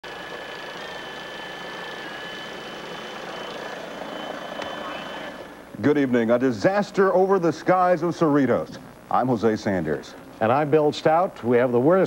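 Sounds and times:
helicopter rush and whine: 0:00.1 - 0:05.6.

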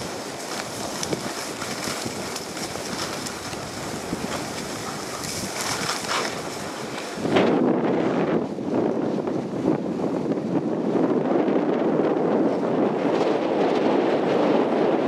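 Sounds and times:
blades scraping over snow: 0:00.0 - 0:11.0
wind rushing on microphone: 0:00.0 - 0:15.0.

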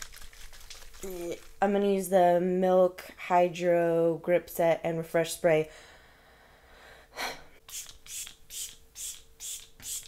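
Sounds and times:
spray bottle hissing spritzes: 0:07.7 - 0:10.0.

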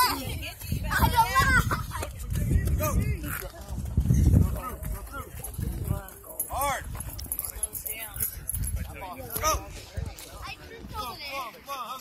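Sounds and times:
children calling and shouting: 0:00.0 - 0:06.8, 0:08.8 - 0:12.0
wind rumble on microphone: 0:00.0 - 0:11.3.

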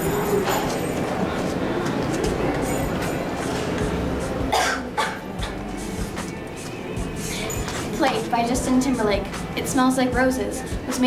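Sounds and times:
faint background music: 0:00.0 - 0:11.0
girl coughing: 0:04.5 - 0:05.6.

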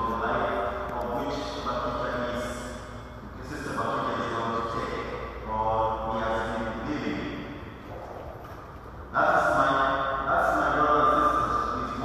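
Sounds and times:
priest chanting a prayer: 0:00.0 - 0:02.7.

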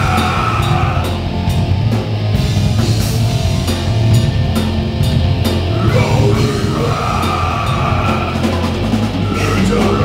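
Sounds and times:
person singing: 0:00.0 - 0:01.3, 0:05.7 - 0:10.0
heavy rock band playing: 0:00.0 - 0:10.0.

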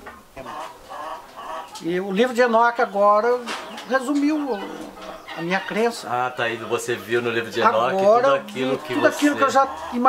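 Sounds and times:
chickens clucking: 0:00.0 - 0:10.0
people talking: 0:01.8 - 0:10.0.

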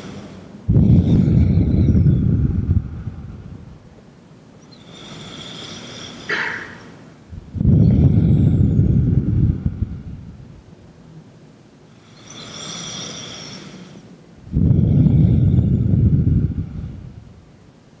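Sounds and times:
breathing on microphone: 0:00.0 - 0:03.7, 0:04.8 - 0:10.5, 0:12.1 - 0:17.3.

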